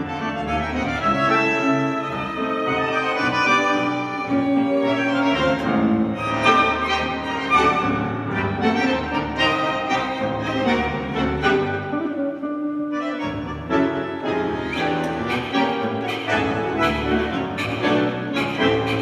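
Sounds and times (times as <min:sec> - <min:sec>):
tango orchestra playing: 0:00.0 - 0:19.0.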